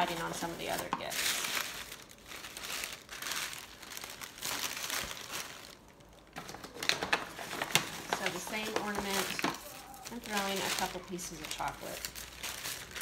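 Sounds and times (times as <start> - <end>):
tissue paper rustling: 0.0 - 13.0.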